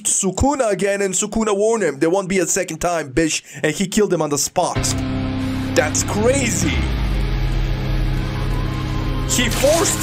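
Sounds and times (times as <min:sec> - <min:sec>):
low rumbling drone: 0:05.0 - 0:09.5.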